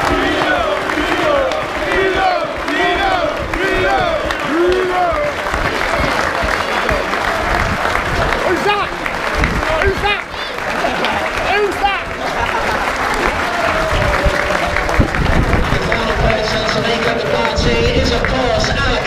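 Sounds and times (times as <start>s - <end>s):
crowd applauding and cheering: 0.0s - 19.0s
shouts and whoops: 3.0s - 15.2s.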